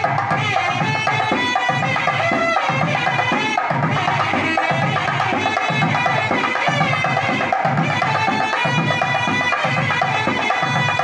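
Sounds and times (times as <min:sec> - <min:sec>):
barrel drum beating: 0:00.0 - 0:11.0.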